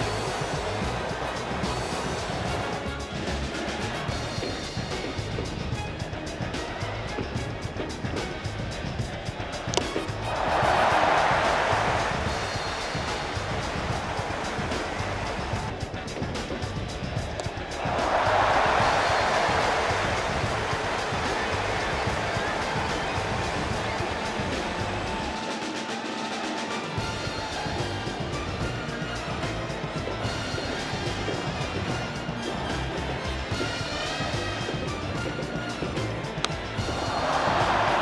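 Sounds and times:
crowd cheering: 0:00.0 - 0:38.0.

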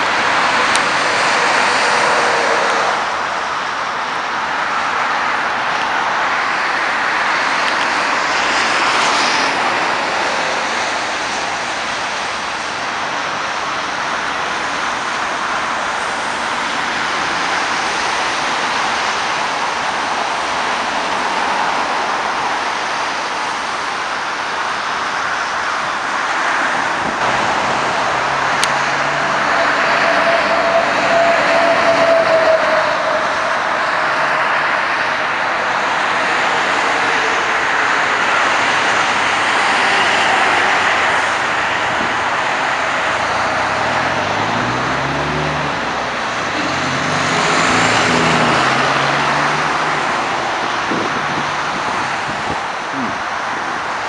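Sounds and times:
highway traffic tyre noise: 0:00.0 - 0:54.0
heavy vehicle engine passing: 0:27.0 - 0:53.2.

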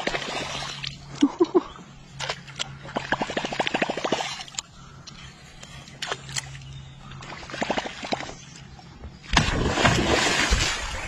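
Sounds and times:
fish striking with churning splash: 0:09.3 - 0:11.0.

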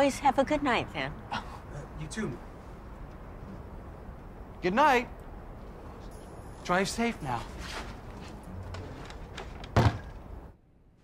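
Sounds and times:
door shutting with thud: 0:09.4 - 0:10.2.

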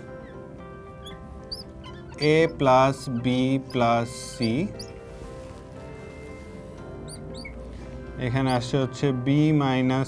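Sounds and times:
soft background music: 0:00.0 - 0:10.0
marker squeaking on board: 0:01.0 - 0:05.7, 0:06.4 - 0:07.7, 0:08.3 - 0:08.7.

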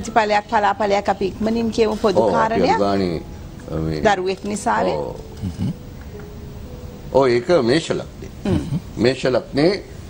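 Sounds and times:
person speaking: 0:02.2 - 0:03.2.

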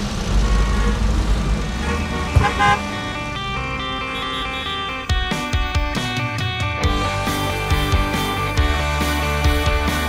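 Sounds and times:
traffic rumble: 0:00.0 - 0:08.3
car horn toot: 0:00.4 - 0:01.1, 0:01.7 - 0:05.1
background music: 0:01.7 - 0:10.0.

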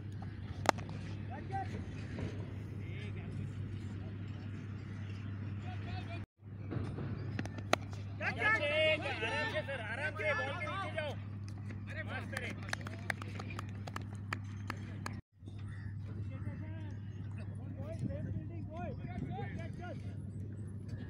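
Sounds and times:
people clapping: 0:12.1 - 0:15.2.

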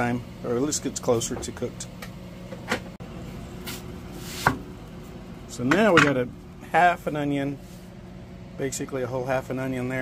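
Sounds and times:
soft brushing sound: 0:03.6 - 0:04.5, 0:07.5 - 0:08.0.

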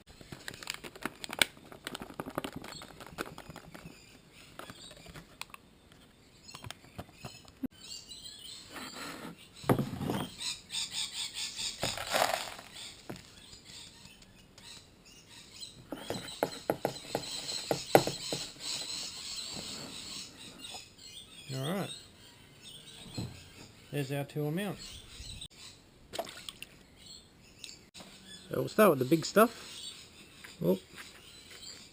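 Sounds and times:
birds chirping: 0:00.0 - 0:31.9
stones tipped into plastic pan: 0:11.8 - 0:13.2
gravel rattling in metal sieve: 0:11.9 - 0:12.8.

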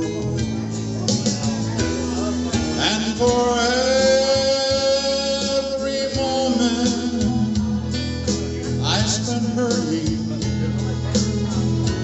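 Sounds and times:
man singing karaoke: 0:00.0 - 0:12.0
recorded guitar backing track: 0:00.0 - 0:12.0.

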